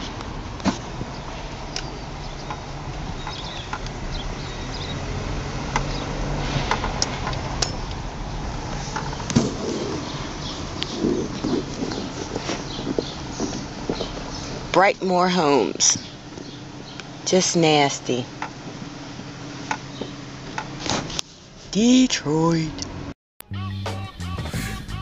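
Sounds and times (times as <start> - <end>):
car engine and road hum: 0.0 - 23.2.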